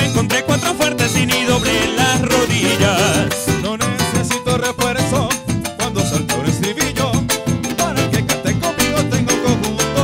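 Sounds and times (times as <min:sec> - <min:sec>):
electric bass: 0:00.0 - 0:10.0
maracas: 0:00.0 - 0:10.0
steady percussion: 0:00.0 - 0:10.0.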